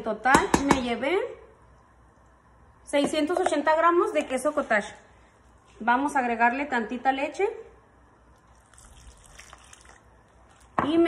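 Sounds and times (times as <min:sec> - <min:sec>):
milk pouring trickle: 0:08.3 - 0:10.8.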